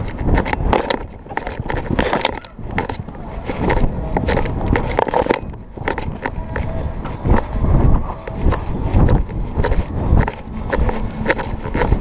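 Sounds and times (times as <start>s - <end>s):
horse hoofbeats on grass: 0.0s - 12.0s.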